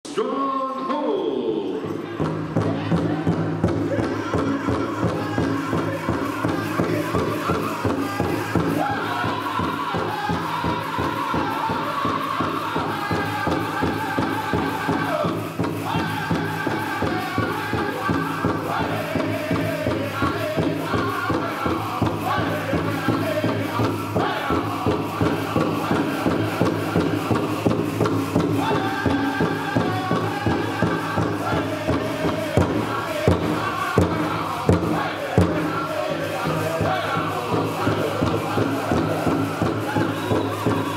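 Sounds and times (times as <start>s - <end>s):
group singing in chorus: 1.9s - 40.9s
steady drumbeat: 1.9s - 40.9s.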